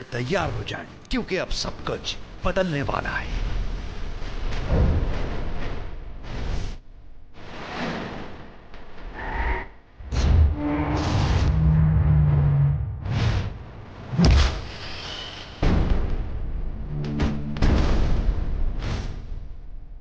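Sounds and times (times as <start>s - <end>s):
whooshes: 10.0s - 16.1s
booming hits: 15.6s - 19.3s
theme music: 16.5s - 18.5s.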